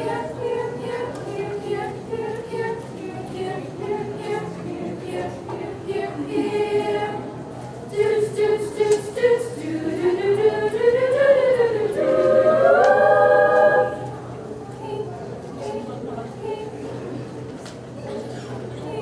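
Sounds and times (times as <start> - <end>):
women's choir singing a cappella: 0.0 - 17.2, 18.8 - 19.0.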